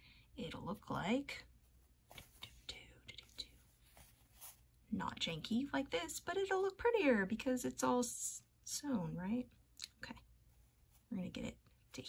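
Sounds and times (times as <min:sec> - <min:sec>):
fabric rustling on paper: 0:01.5 - 0:04.9.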